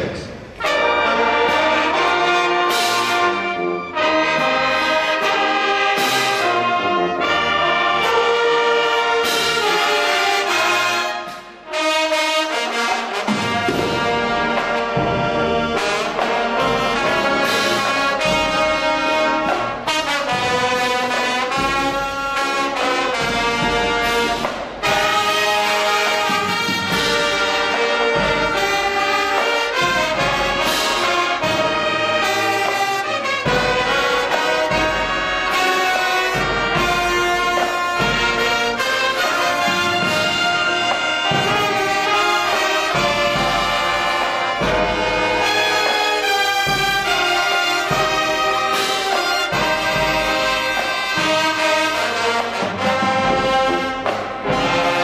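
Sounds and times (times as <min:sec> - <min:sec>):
marching band drums: 0:00.0 - 0:55.0
trombones: 0:00.0 - 0:55.0
trumpets: 0:00.0 - 0:55.0.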